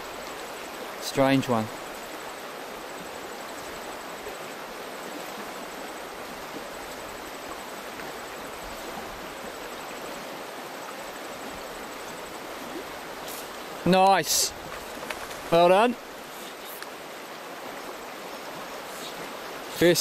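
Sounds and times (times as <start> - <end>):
river water rushing over stones: 0.0 - 20.0.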